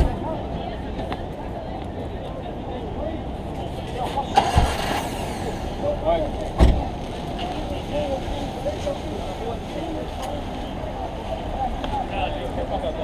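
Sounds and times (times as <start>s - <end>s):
distant voices: 0.0s - 13.0s
road traffic: 0.0s - 13.0s.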